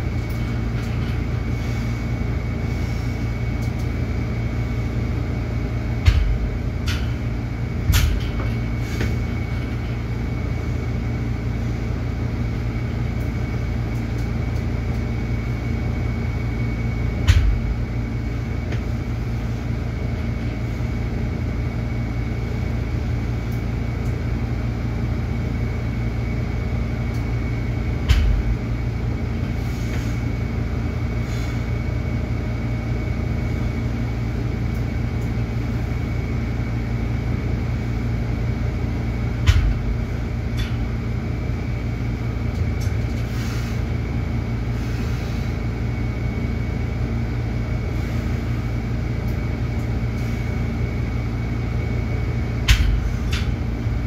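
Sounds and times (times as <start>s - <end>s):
low mechanical hum: 0.0s - 54.0s.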